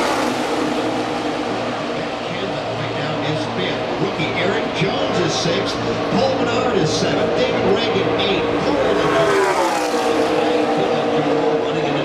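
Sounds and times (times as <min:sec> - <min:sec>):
race cars passing at speed: 0:00.0 - 0:12.0.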